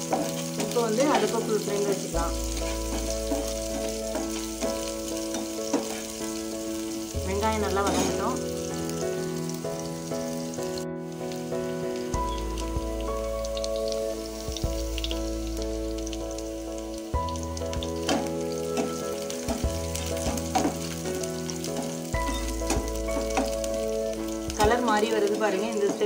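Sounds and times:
background music chords: 0:00.0 - 0:26.0
onions sizzling in oil: 0:00.0 - 0:26.0
metal spatula scraping pan: 0:02.5 - 0:06.2.

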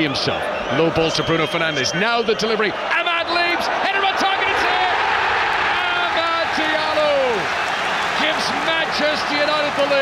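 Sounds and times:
stadium crowd roaring: 0:00.0 - 0:10.0
commentator shouting excitedly: 0:02.9 - 0:05.0.

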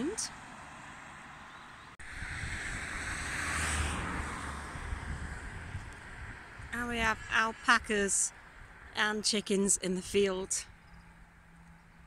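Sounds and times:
wind rumbling on microphone: 0:02.0 - 0:09.0.

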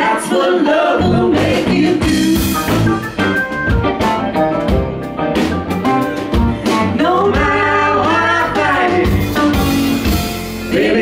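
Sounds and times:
live rock band playing: 0:01.0 - 0:11.0
person singing: 0:06.6 - 0:09.6.

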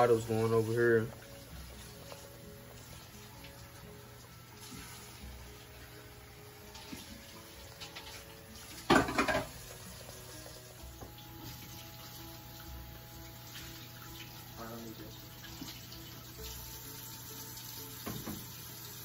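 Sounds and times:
quiet background music: 0:00.0 - 0:19.0
running water: 0:00.0 - 0:19.0.

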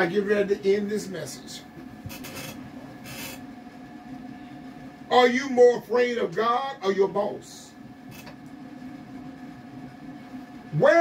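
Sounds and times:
faint hum of held tones: 0:00.0 - 0:11.0.

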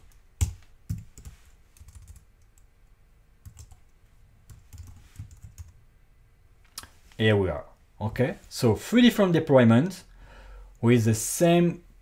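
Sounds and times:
typing on computer keyboard: 0:00.4 - 0:02.7, 0:03.4 - 0:03.9, 0:04.5 - 0:05.8.

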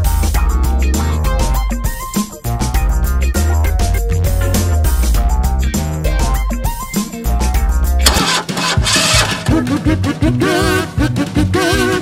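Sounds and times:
background music: 0:00.0 - 0:12.0
car engine starting: 0:08.0 - 0:09.8.

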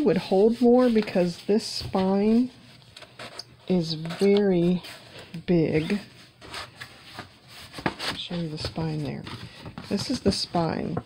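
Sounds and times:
album cover rubbing and tapping: 0:00.0 - 0:11.0.

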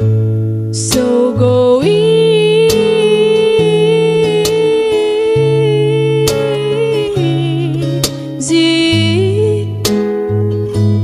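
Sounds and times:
acoustic backing track: 0:00.0 - 0:11.0
guitar strum: 0:00.0 - 0:11.0
woman singing long note: 0:00.9 - 0:07.8.

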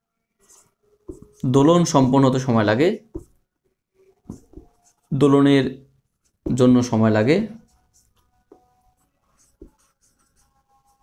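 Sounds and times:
marker pen writing on whiteboard: 0:00.3 - 0:03.5, 0:04.1 - 0:11.0
man speaking: 0:01.4 - 0:03.1, 0:05.1 - 0:05.9, 0:06.5 - 0:07.7.

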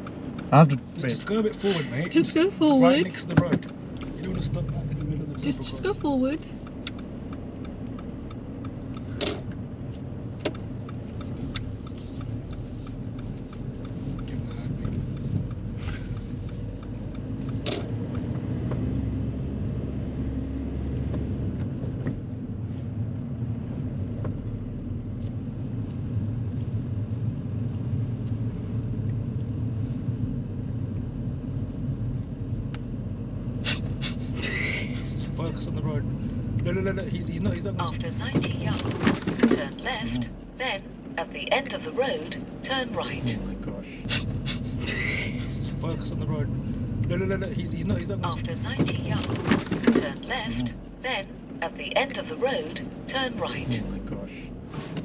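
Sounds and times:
car road and engine rumble: 0:00.0 - 0:55.0.

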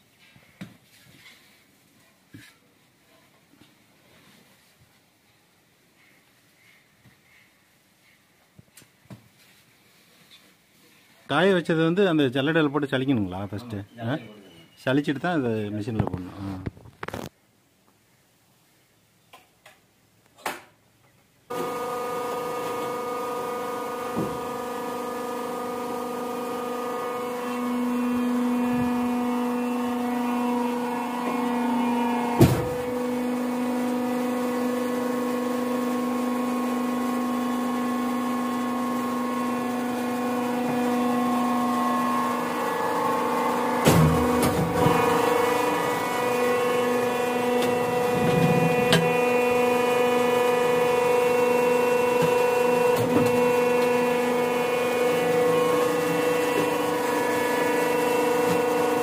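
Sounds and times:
electric motor and hydraulic pump hum: 0:21.5 - 0:59.0
steady machine tones: 0:40.0 - 0:52.8.

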